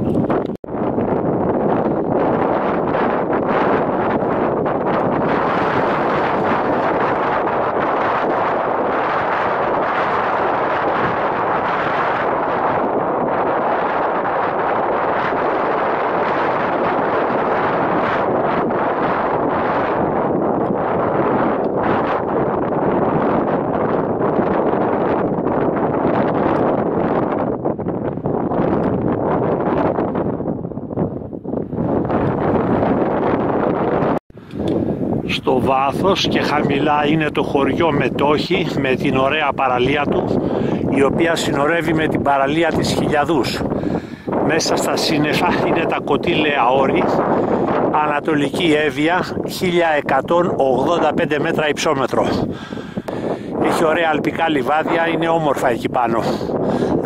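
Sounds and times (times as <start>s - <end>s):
strong wind buffeting microphone: 0.0s - 57.0s.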